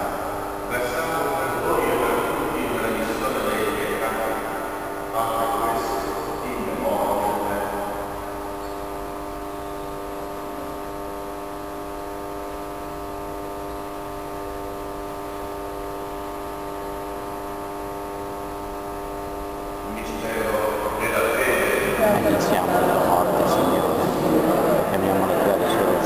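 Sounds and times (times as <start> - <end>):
church organ chord: 0.0 - 10.5, 15.0 - 26.0.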